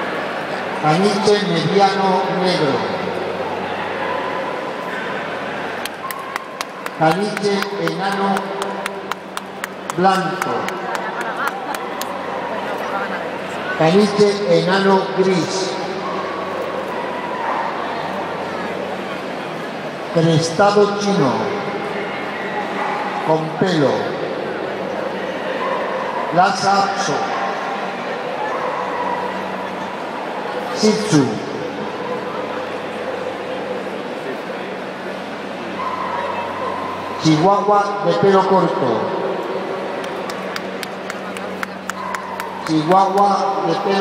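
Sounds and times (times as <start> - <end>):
crowd chatter in a hall: 0.0 - 44.0
dog barking: 28.4 - 29.6.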